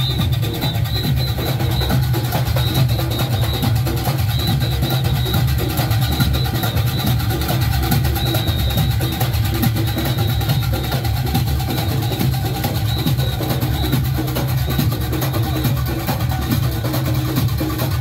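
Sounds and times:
high shrill whistle: 0.0 - 16.0
drums beating a dense rhythm: 0.0 - 18.0
fast clanging cowbells: 0.0 - 18.0.

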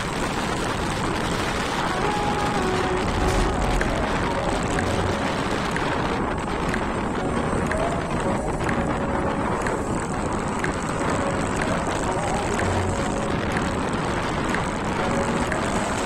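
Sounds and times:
scooter engine running: 0.0 - 16.0
wind and road noise: 0.0 - 16.0.

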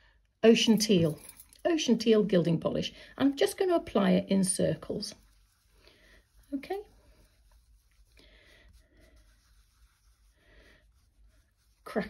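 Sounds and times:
sponge rubbing on card: 3.4 - 12.0.

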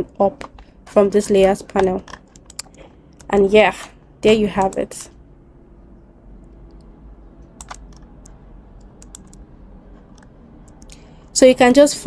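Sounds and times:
low steady hum: 0.0 - 12.0
mouse and keyboard clicks: 1.4 - 3.3, 7.6 - 8.1, 9.0 - 9.4.

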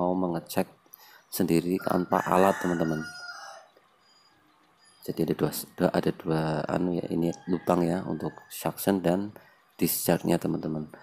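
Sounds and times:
rooster crowing: 1.8 - 3.8, 7.2 - 8.9.

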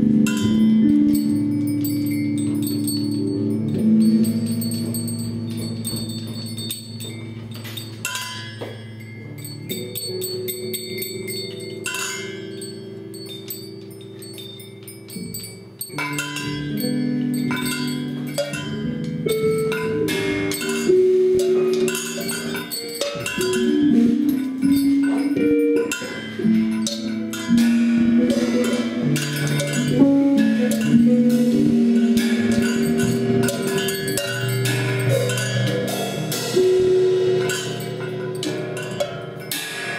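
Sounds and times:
live band instrumental music: 19.2 - 34.0.

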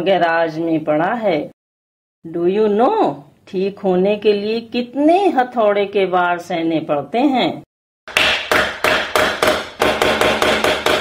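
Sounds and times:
hammer striking metal: 8.1 - 11.0.

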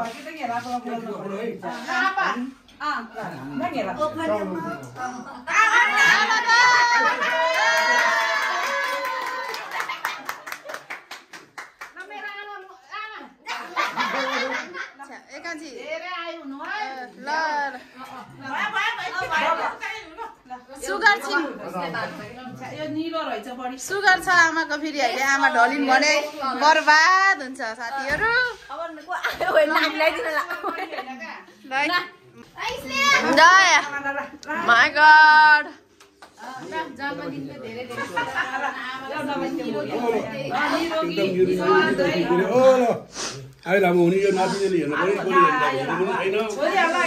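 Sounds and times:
hands clapping rapidly: 7.8 - 12.1.

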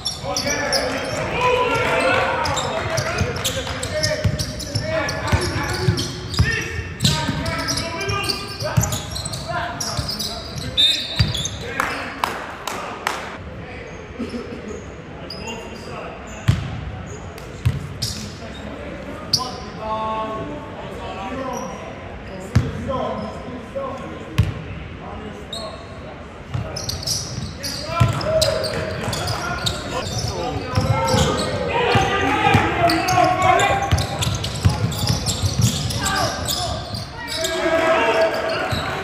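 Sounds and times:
basketball bouncing on hall floor: 1.8 - 9.3, 11.2 - 11.6, 26.5 - 36.8
indistinct shouting voices: 36.0 - 39.0.

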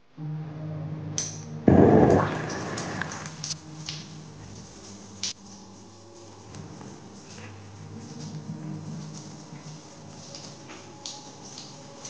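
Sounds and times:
shower water spray rushing: 1.7 - 3.6.

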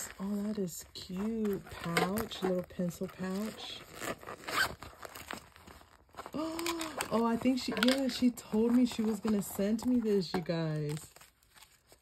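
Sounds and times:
zipper being unzipped: 1.1 - 5.5.

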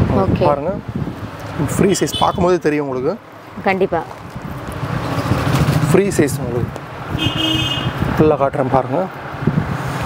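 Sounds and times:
vehicle engine passing: 3.5 - 10.0.

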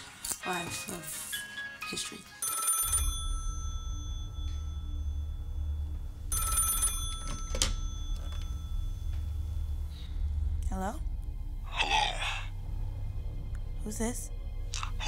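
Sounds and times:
telephone ringing: 2.4 - 9.2
low steady rumble: 3.4 - 15.0.

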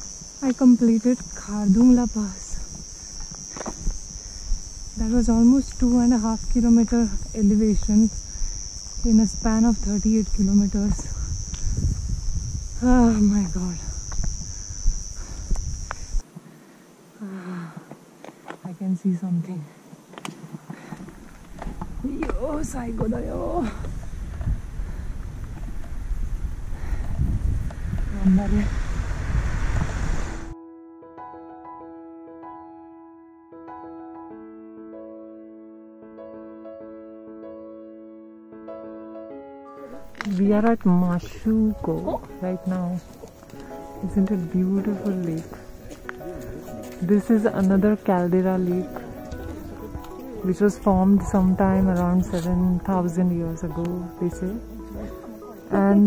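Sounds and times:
wind buffeting microphone: 0.0 - 16.2, 20.4 - 30.6, 40.1 - 56.0
insects chorus: 0.0 - 30.6, 39.8 - 56.0
low rumble: 23.7 - 30.6
soft piano music: 30.4 - 56.0.

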